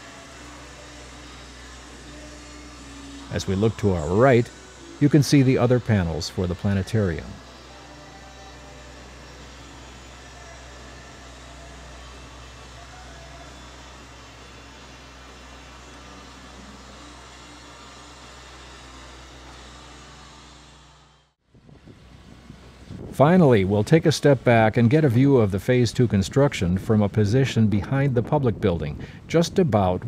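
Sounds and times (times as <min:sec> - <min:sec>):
low mechanical hum: 0:00.0 - 0:30.0.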